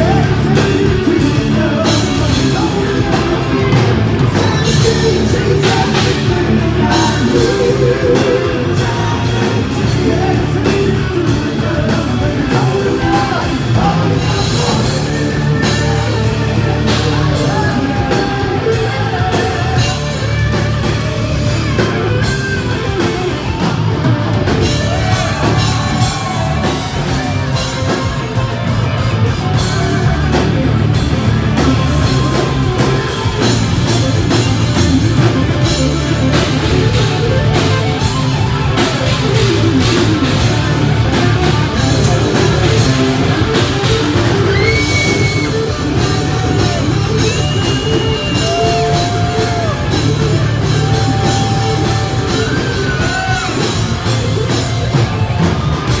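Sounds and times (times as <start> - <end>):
live hard rock band: 0.0 - 56.0.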